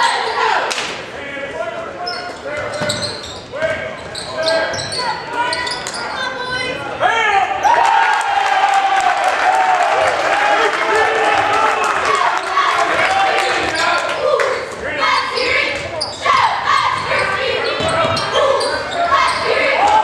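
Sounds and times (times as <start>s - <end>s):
sneakers squeaking: 2.0s - 6.8s, 15.0s - 20.0s
crowd yelling: 7.0s - 20.0s
people shouting: 7.0s - 20.0s.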